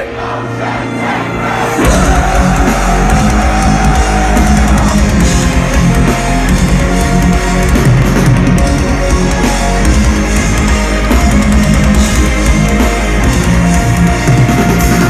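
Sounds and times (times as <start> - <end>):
metal band playing live: 0.0 - 15.0.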